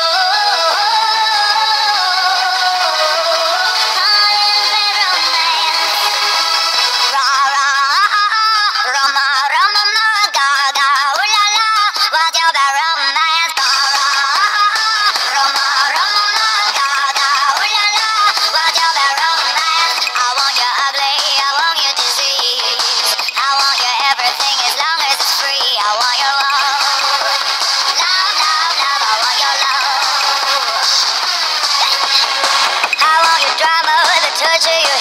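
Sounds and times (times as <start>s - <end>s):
high-pitched singing voice: 0.0s - 6.3s, 6.9s - 35.0s
backing music: 0.0s - 8.8s, 13.5s - 35.0s.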